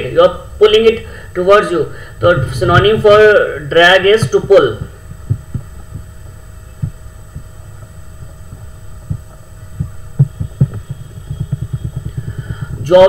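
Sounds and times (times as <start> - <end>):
faint electrical hum: 0.0 - 13.0
soft low thumps: 2.2 - 13.0.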